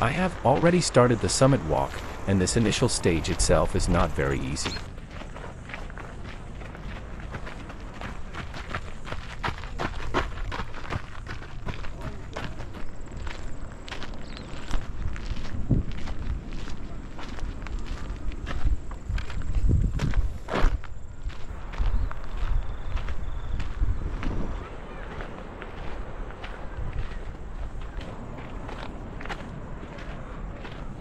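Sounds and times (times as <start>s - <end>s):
footsteps on trail: 0.0s - 31.0s.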